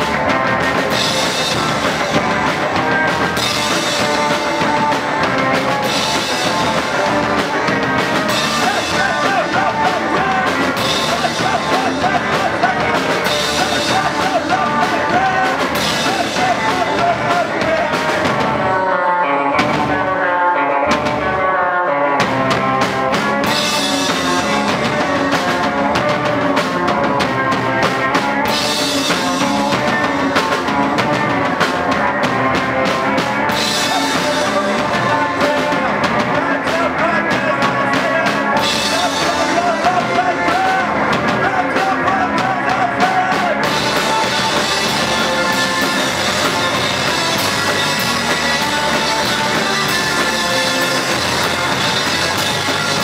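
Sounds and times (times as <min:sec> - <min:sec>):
rock band playing loud: 0:00.0 - 0:53.0.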